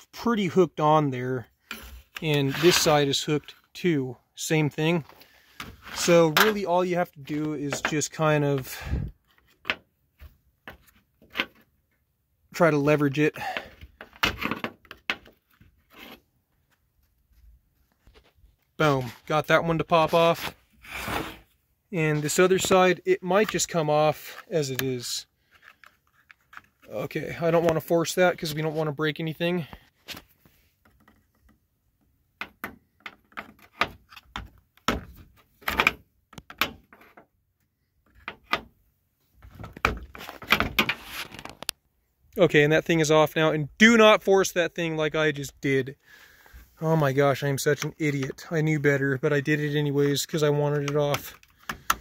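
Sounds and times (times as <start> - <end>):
metal tool scraping plastic clip: 1.6 - 3.6
metal tool scraping plastic: 1.6 - 3.8, 13.4 - 16.3, 20.1 - 21.6.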